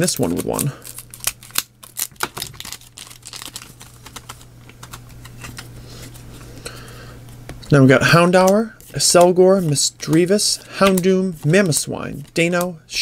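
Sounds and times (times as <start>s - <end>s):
foil pack crackling: 0.0s - 5.2s
low steady hum: 0.0s - 13.0s
cards ticking: 8.4s - 12.7s.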